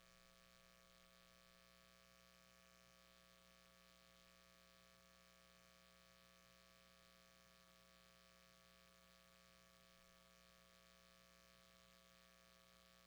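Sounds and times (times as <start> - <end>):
faint electrical hum: 0.0 - 13.0.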